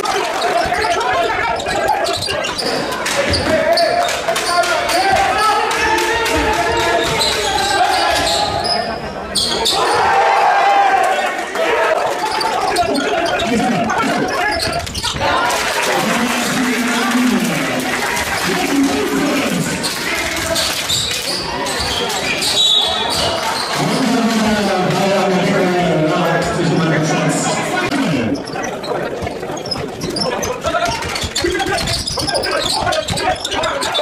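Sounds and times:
sneakers squeaking: 0.0s - 10.3s, 12.0s - 15.6s, 19.4s - 25.0s, 26.4s - 34.0s
players calling out: 0.0s - 34.0s
voices in echoing hall: 0.0s - 34.0s.

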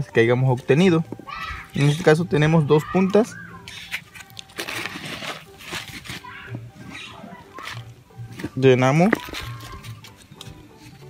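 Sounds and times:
hands scooping soil: 1.7s - 11.0s.

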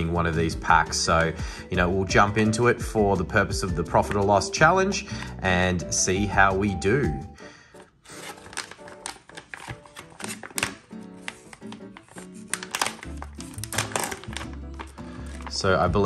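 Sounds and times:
background music: 0.0s - 16.0s
foil wrapper crinkling: 7.8s - 16.0s.

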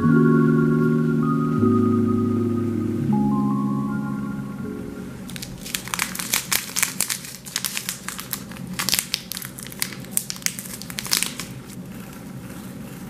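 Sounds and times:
plastic bag crinkling: 5.2s - 13.0s.

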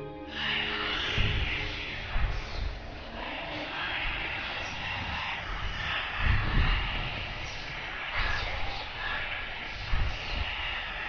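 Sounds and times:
noisy rumbling drone: 0.0s - 11.0s.

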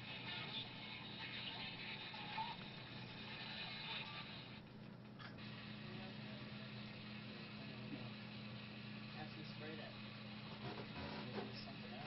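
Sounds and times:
low electrical hum: 0.0s - 12.0s
radio hiss: 5.4s - 12.0s
snatches of radio broadcast: 10.5s - 12.0s.

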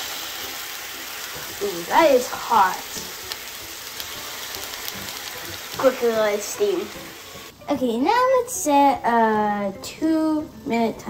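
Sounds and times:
water sizzling in frying pan: 0.0s - 7.6s.

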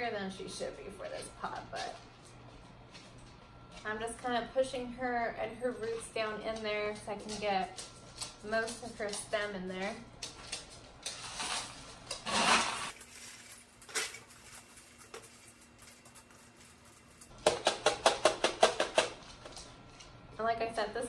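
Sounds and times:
pebbles clattering in pot: 8.4s - 17.4s.

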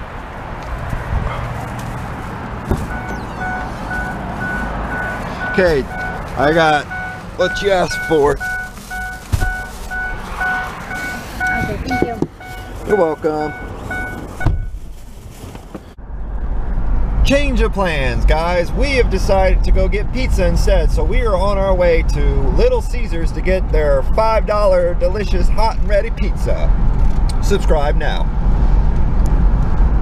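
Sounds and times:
car door thump: 2.7s - 3.3s, 14.4s - 14.8s
door-open warning chime beeping: 2.9s - 6.2s.

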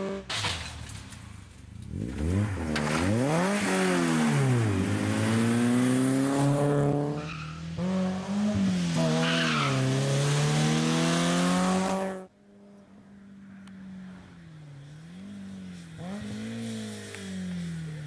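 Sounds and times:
rally car engine revving: 1.8s - 12.3s, 13.7s - 18.0s.

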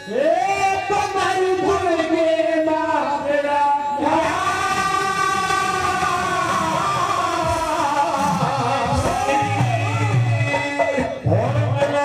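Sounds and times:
devotional band accompaniment: 0.0s - 12.0s.

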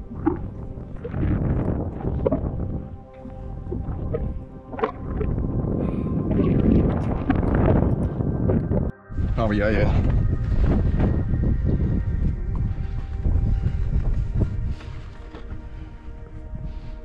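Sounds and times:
background music: 0.0s - 17.0s
wind buffeting microphone: 0.0s - 17.0s.

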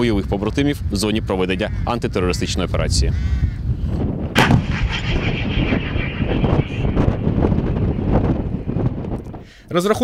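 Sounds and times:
howitzer firing blast: 4.4s - 9.2s
rolling rumble and echo: 4.4s - 9.4s.

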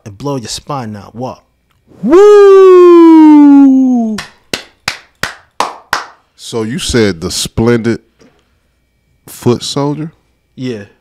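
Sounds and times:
person clapping: 4.1s - 6.2s.

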